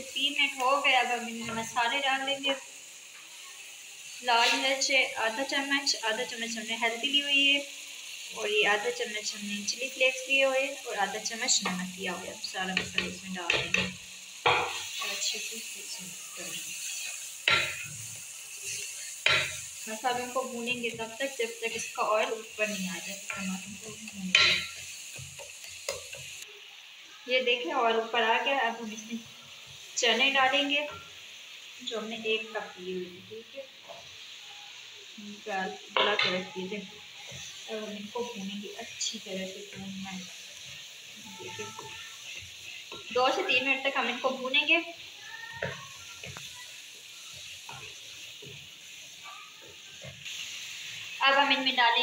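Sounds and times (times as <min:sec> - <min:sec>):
spices sizzling in oil: 0:00.0 - 0:52.0
spatula scraping pan: 0:12.7 - 0:15.6, 0:16.4 - 0:26.4, 0:35.9 - 0:51.6.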